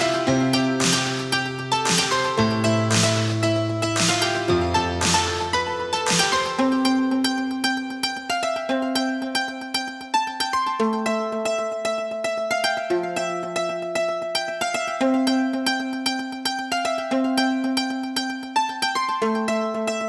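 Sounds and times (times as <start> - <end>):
plucked-string tune: 0.0 - 20.0.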